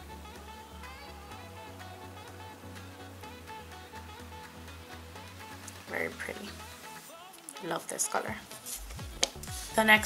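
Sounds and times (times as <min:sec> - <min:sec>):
soft background music: 0:00.0 - 0:10.0
woman speaking: 0:05.8 - 0:06.6, 0:07.6 - 0:08.4, 0:09.7 - 0:10.0.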